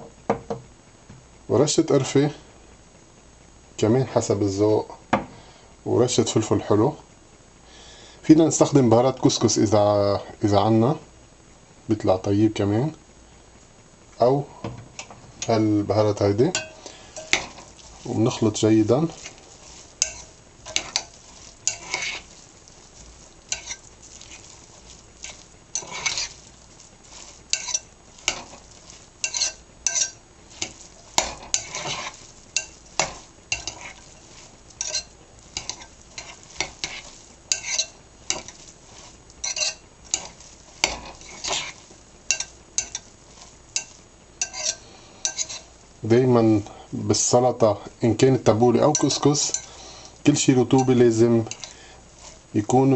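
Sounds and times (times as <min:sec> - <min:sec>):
spoon stirring wet salad: 0:16.4 - 0:45.8, 0:48.4 - 0:52.9.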